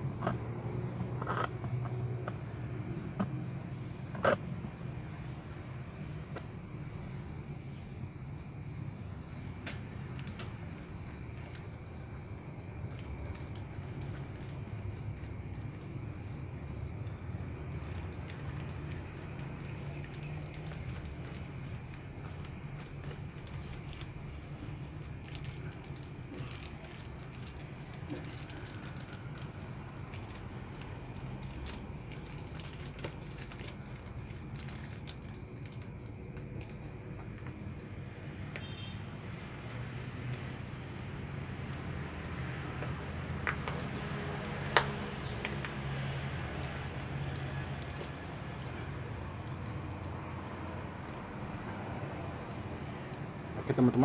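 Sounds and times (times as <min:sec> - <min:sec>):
plastic bag crinkling: 0:12.6 - 0:15.9, 0:17.1 - 0:36.8, 0:43.6 - 0:51.2.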